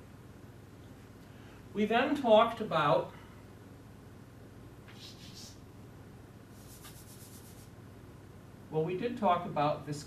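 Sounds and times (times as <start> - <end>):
chalk scratching on blackboard: 4.9 - 5.6, 6.5 - 7.8.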